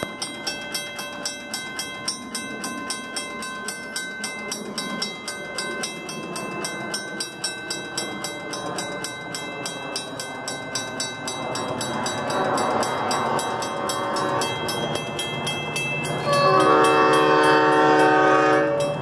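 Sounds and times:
railroad crossing bell ringing: 0.0 - 19.0.

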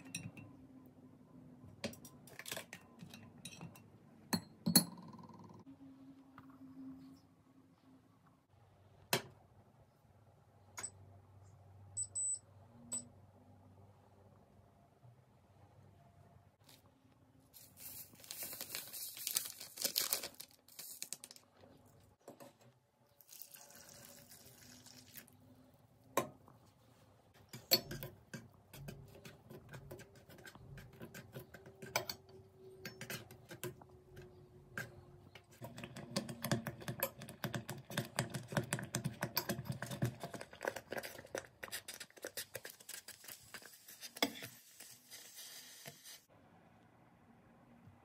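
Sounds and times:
foil sachet crinkling: 17.6 - 21.4
powder pouring into metal pot: 23.2 - 25.4.

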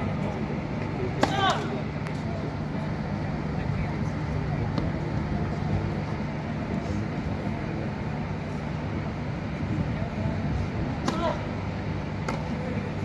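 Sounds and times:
murmur of spectators: 0.0 - 13.0.

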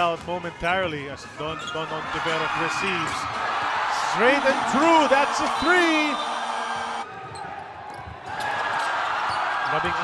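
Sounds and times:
arena crowd cheering: 1.4 - 10.0.

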